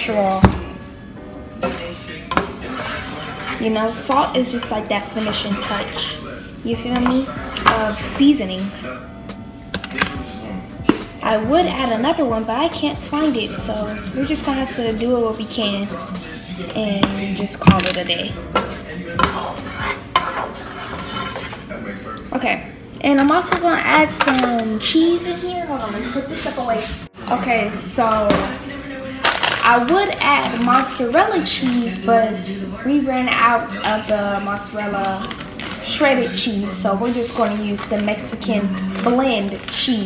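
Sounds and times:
utensil stirring pasta in pan: 0:02.3 - 0:06.2, 0:18.6 - 0:21.7.

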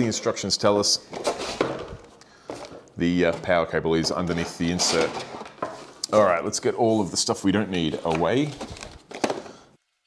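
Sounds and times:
packaging knocks and scrapes: 0:01.1 - 0:06.0, 0:07.7 - 0:09.6.

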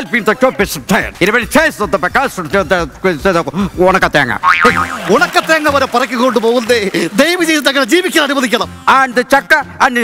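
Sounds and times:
man speaking loudly: 0:00.0 - 0:10.0.

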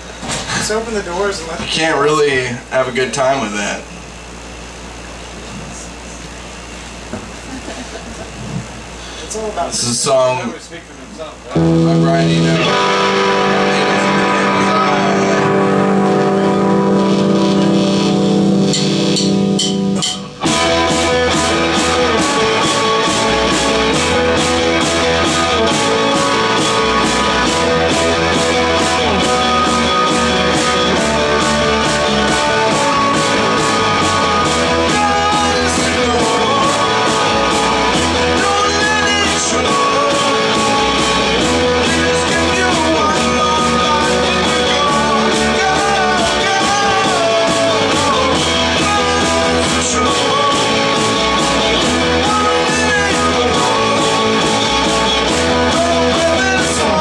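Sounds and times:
sustained guitar chord ringing: 0:11.5 - 0:47.7
rock band playing: 0:11.5 - 0:57.0
drums fast steady beat: 0:11.6 - 0:57.0.

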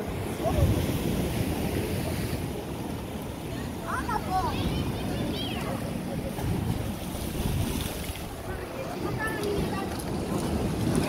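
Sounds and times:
sea waves breaking on rocks: 0:00.0 - 0:11.0
wind buffeting microphone: 0:00.0 - 0:11.0
faint chatter of people: 0:00.3 - 0:11.0.

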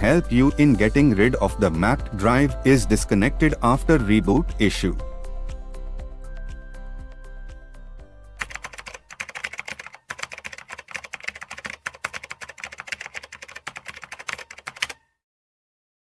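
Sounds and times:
background music with beat: 0:00.0 - 0:08.7
keyboard typing clicks: 0:08.4 - 0:15.0.

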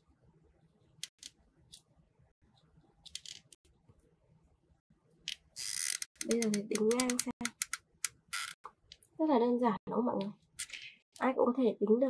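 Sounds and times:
glue gun mechanism ratcheting: 0:05.3 - 0:08.6.

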